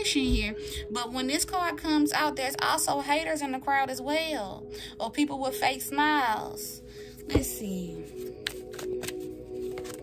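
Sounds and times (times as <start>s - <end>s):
soft background music: 0.0s - 10.0s
cards being shuffled: 8.1s - 10.0s.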